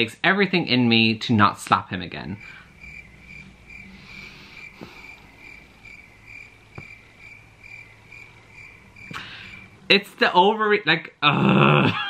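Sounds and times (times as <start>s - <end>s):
cricket chirping: 2.2s - 9.9s.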